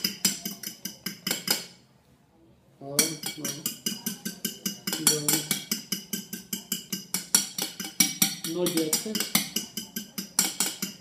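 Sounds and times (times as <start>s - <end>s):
utensil beating eggs in bowl: 0.0s - 1.7s, 3.0s - 11.0s.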